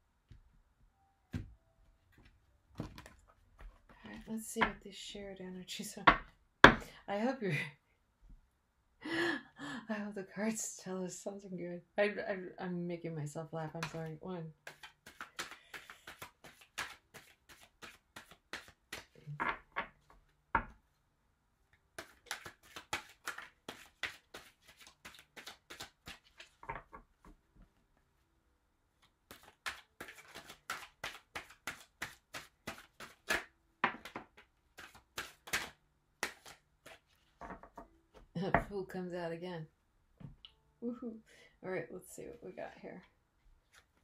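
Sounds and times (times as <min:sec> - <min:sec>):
cards being shuffled by hand: 0:13.8 - 0:19.2, 0:22.0 - 0:27.4, 0:29.0 - 0:37.8.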